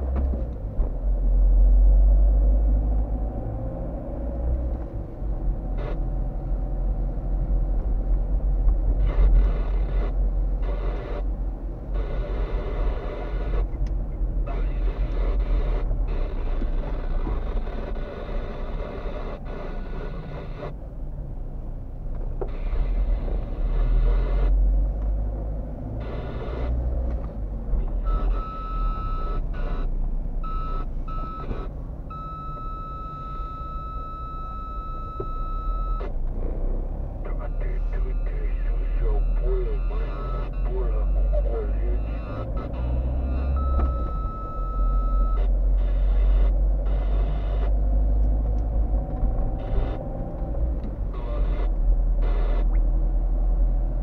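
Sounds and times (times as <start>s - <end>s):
car engine and road rumble: 0.0s - 54.0s
high electronic beep: 28.0s - 29.9s, 37.4s - 47.8s, 49.6s - 50.1s.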